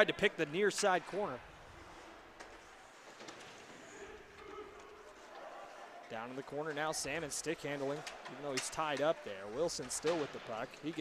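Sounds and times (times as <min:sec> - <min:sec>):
distant voices in an arena: 0:00.0 - 0:11.0
hockey sticks clicking on ice: 0:02.3 - 0:05.5, 0:06.4 - 0:11.0.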